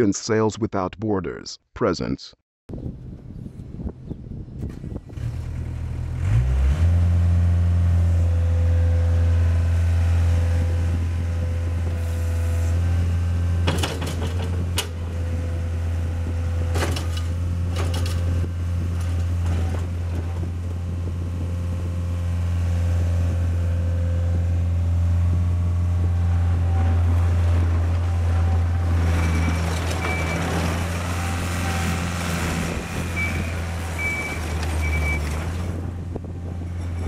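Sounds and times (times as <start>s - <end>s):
diesel engine running: 4.7s - 37.0s
tracks grinding over gravel: 26.0s - 37.0s.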